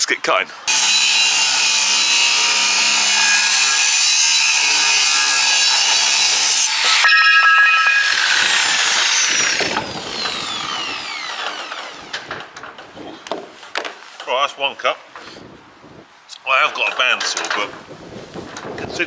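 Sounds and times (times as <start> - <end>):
angle grinder cutting steel: 0.7 - 12.3
grinder winding down: 0.7 - 12.4.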